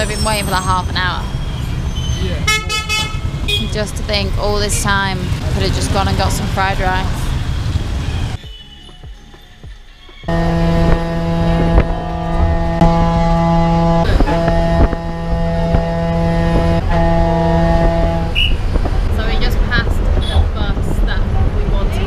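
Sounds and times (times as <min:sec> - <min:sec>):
bus engine and road rumble: 0:00.0 - 0:22.0
loud steady pitched tone: 0:10.3 - 0:19.2.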